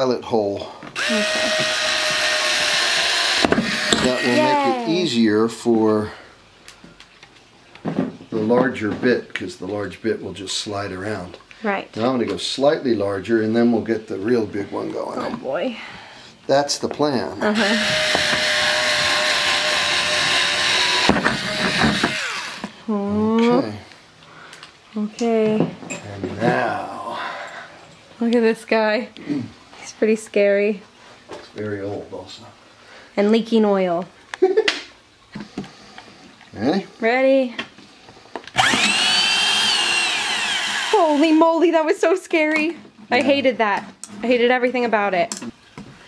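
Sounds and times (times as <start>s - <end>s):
cordless drill drilling metal: 1.0s - 4.7s, 17.6s - 22.7s, 38.5s - 41.5s.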